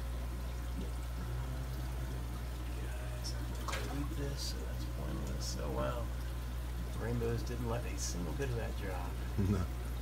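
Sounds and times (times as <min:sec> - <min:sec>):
aquarium filter hum: 0:00.0 - 0:10.0
water bubbling and trickling: 0:00.0 - 0:10.0.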